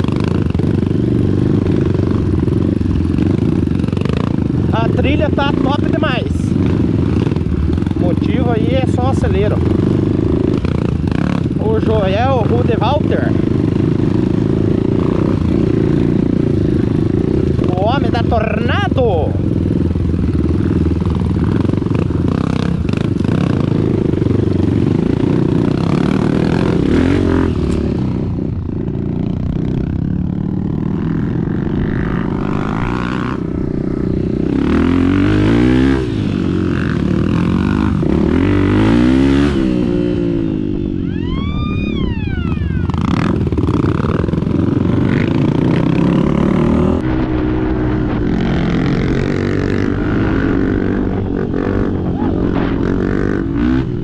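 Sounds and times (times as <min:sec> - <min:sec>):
motorcycle engine revving: 0:00.0 - 0:54.0
wind rumble on microphone: 0:43.4 - 0:54.0.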